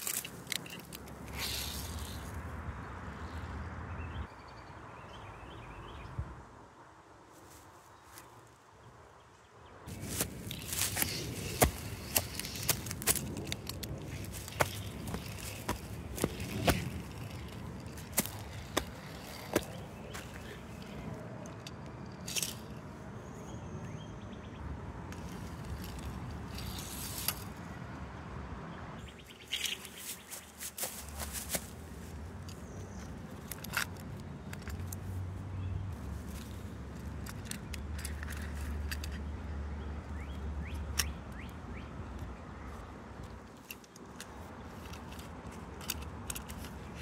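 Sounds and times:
toy car rolling on plastic track: 0.0s - 2.3s
crunchy scrape: 0.0s - 2.4s, 9.9s - 22.8s, 25.1s - 27.7s, 29.4s - 35.1s
camera moving through leaves: 7.3s - 8.6s, 9.9s - 21.2s, 25.2s - 27.7s, 29.0s - 33.4s.

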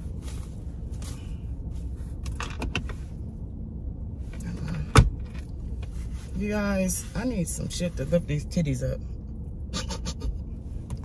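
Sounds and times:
low rumble inside car: 0.0s - 11.0s.

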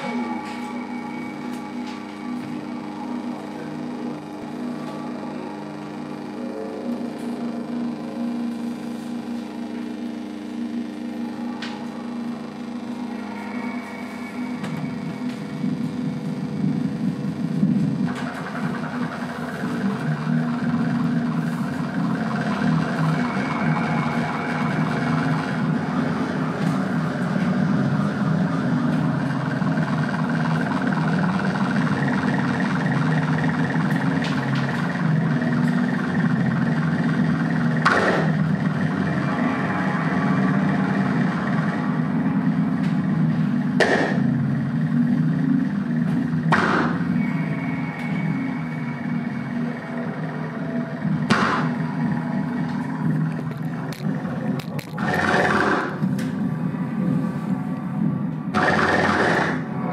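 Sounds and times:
low electronic drone: 0.0s - 59.9s
grainy high synth tones: 18.3s - 43.6s, 44.6s - 59.9s
sharp noisy hits: 35.5s - 42.0s.

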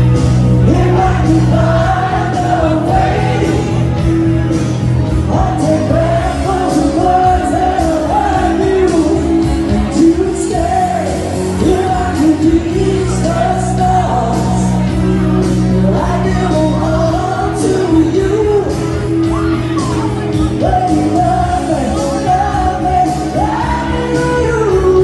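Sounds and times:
loud backing music: 0.0s - 25.0s.

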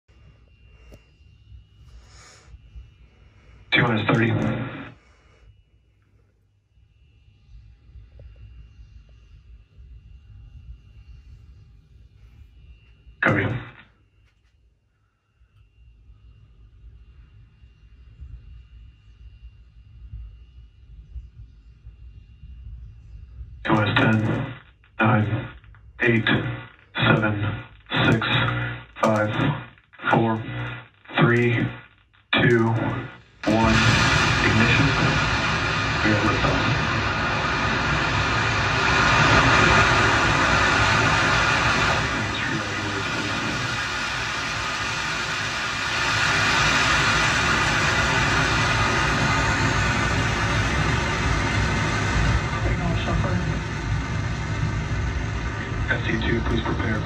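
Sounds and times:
faint low rumble: 0.0s - 57.0s.

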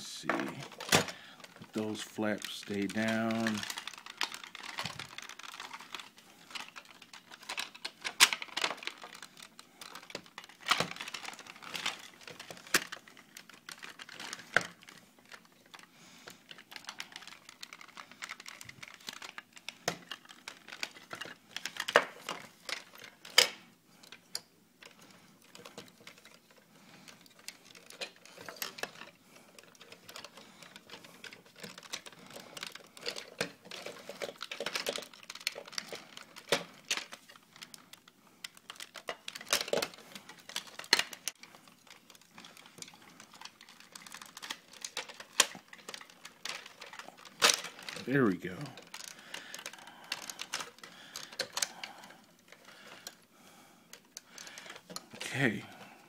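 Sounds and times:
plastic toy parts clicking: 0.5s - 53.3s, 53.9s - 55.7s.

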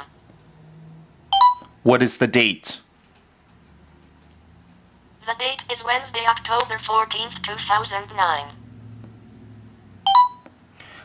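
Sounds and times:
two-note electronic beep: 1.3s - 1.7s, 10.1s - 10.5s.

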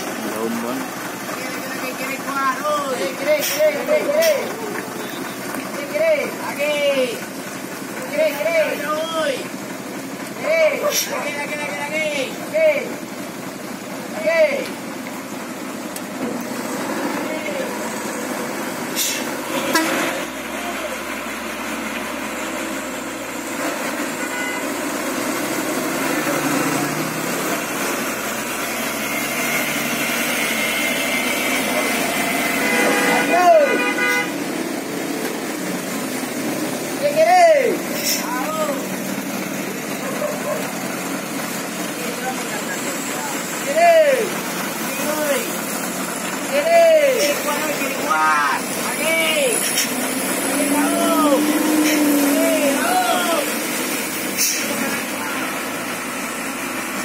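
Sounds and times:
heavy truck engine pulling hard: 0.0s - 57.0s
rising and falling shouts: 46.5s - 53.9s.

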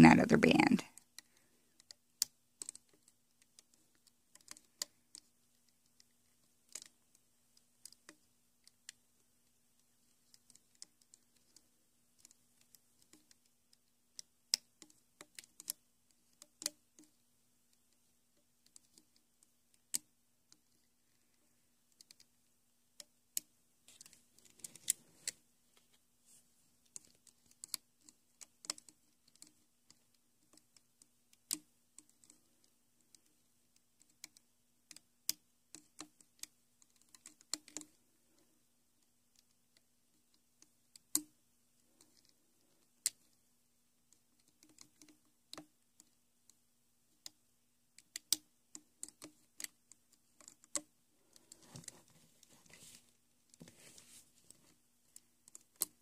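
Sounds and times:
hook clicking on plastic pegs: 1.1s - 7.2s, 7.8s - 9.0s, 12.2s - 17.9s, 26.8s - 33.3s, 34.0s - 38.4s, 44.4s - 46.2s, 48.0s - 52.0s.

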